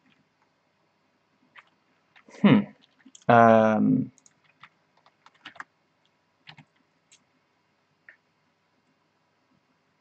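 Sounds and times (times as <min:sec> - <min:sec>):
faint keyboard typing: 0:00.0 - 0:00.6, 0:01.4 - 0:03.5, 0:04.1 - 0:07.4.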